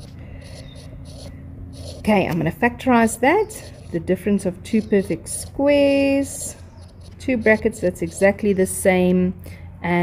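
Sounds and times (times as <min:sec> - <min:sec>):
stylus scratching on glass: 0:00.0 - 0:02.2
low steady hum: 0:00.0 - 0:10.0.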